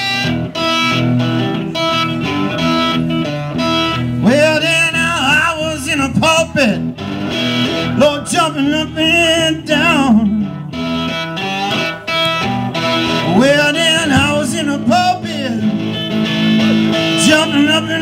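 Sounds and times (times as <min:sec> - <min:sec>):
slide guitar blues: 0:00.0 - 0:18.0.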